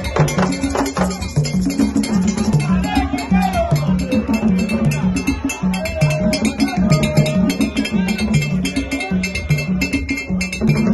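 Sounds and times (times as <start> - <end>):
hand drums playing: 0.0 - 10.9
metal bell strikes: 0.0 - 10.9.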